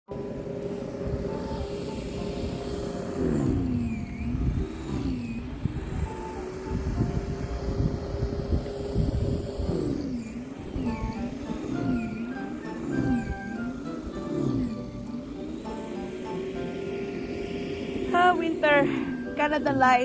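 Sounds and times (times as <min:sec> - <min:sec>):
snow thrower motor whining: 0:00.1 - 0:20.0
wind rumble on microphone: 0:02.5 - 0:14.7.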